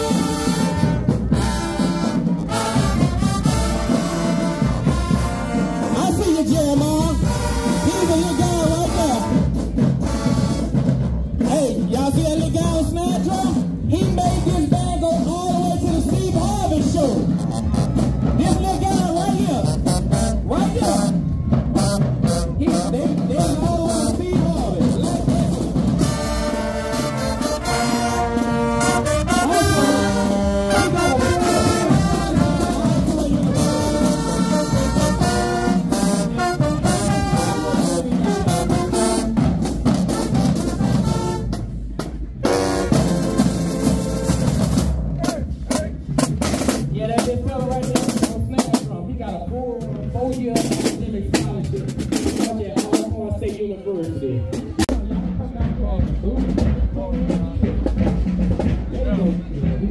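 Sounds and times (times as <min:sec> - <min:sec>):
bass drums and cymbals: 0:00.0 - 0:59.9
marching band playing: 0:00.0 - 0:59.9.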